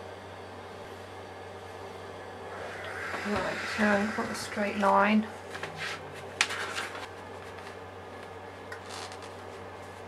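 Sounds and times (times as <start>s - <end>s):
faint steady hum: 0.0s - 10.0s
paper rustling: 5.5s - 7.8s.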